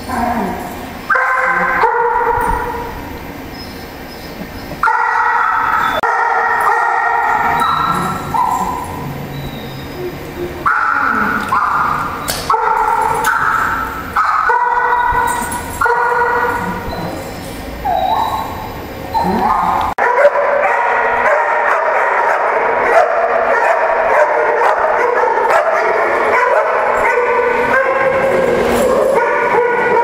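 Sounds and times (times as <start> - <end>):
dog howling yips and whines: 6.6 - 20.0.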